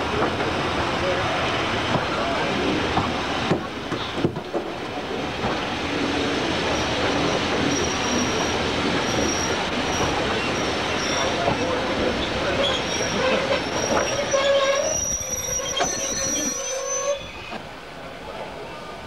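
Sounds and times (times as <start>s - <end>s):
train running noise: 0.0s - 19.0s
train wheels squealing on rail: 6.1s - 17.6s.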